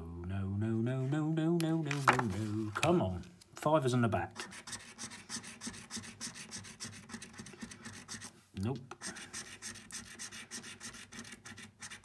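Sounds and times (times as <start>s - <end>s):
coin scraping scratchcard: 4.4s - 8.3s, 9.0s - 12.0s.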